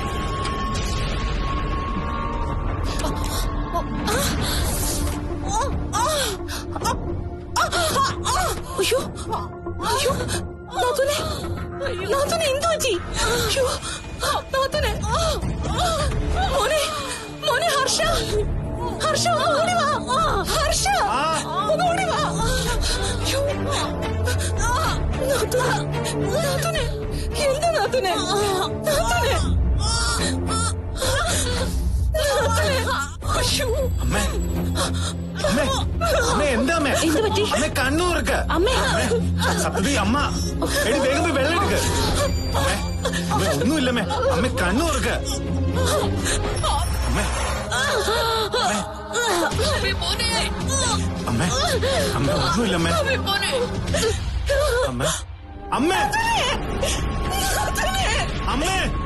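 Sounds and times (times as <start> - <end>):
dramatic score low drone: 0.0 - 59.0
woman moaning and gasping in pain: 2.5 - 59.0.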